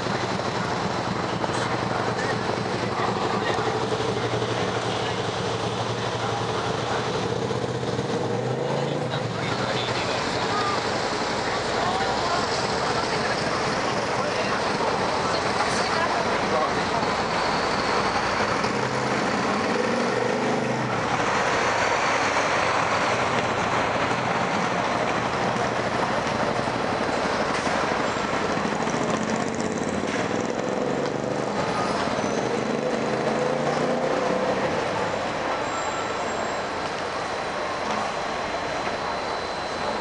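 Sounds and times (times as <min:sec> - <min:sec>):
road traffic noise: 0:00.0 - 0:40.0.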